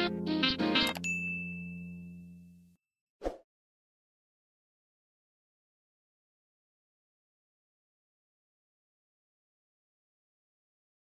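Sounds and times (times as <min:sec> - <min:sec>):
background music chord: 0:00.0 - 0:01.0
notification ding: 0:01.0 - 0:02.4.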